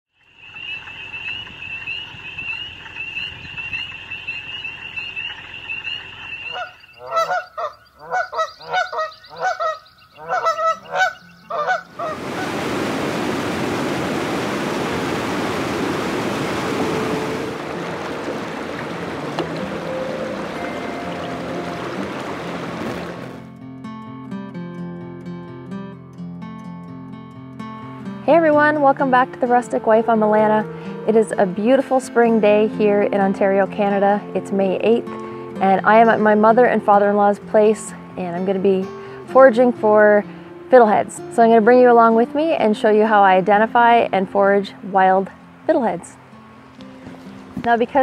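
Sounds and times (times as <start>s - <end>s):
high-pitched trilling chorus: 0.2s - 11.8s
geese honking: 0.3s - 12.8s, 16.4s - 23.4s
acoustic guitar music: 16.7s - 48.0s.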